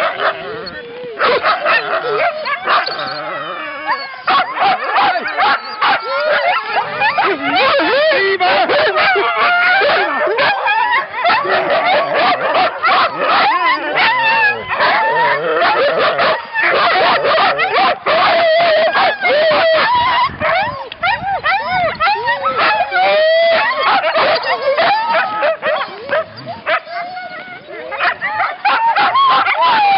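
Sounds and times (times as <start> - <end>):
sled dogs barking and howling: 0.0 - 29.9.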